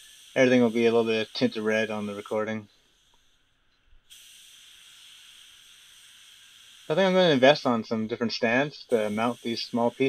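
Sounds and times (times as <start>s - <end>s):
spray gun hissing: 0.0s - 10.0s.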